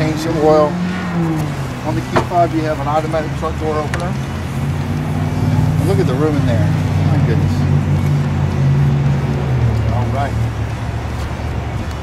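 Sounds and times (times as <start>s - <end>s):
low rumble of motor traffic: 0.0s - 12.0s
vehicle passing by: 0.0s - 12.0s.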